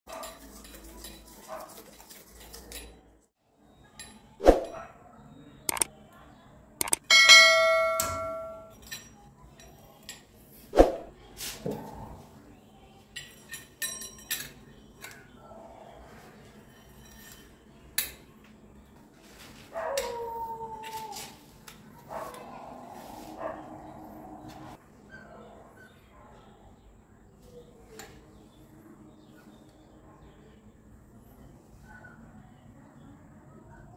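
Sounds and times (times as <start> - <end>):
sharp clicks: 6.8 - 7.1
metal clinks and knocks: 6.8 - 9.8
bright ringing chime: 7.1 - 8.8.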